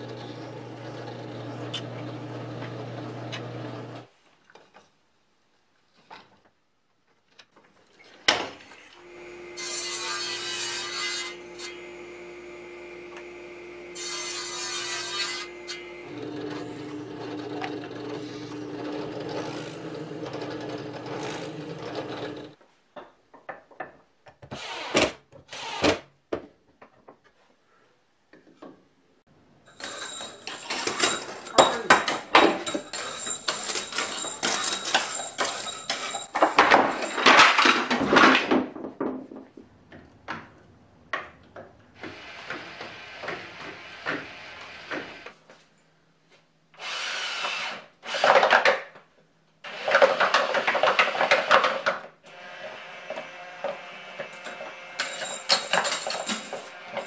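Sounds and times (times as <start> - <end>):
table saw motor humming: 0.0 - 4.0, 11.1 - 22.5
saw cutting wood: 9.0 - 22.6.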